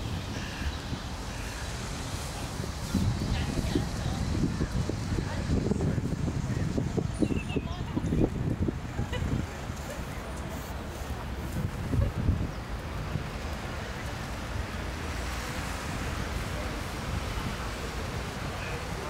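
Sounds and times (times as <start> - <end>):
wind and water noise: 0.0 - 19.0
wind buffeting microphone: 0.0 - 19.0.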